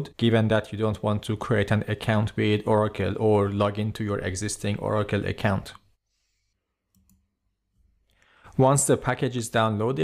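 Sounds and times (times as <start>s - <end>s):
computer mouse clicks: 6.9s - 7.2s.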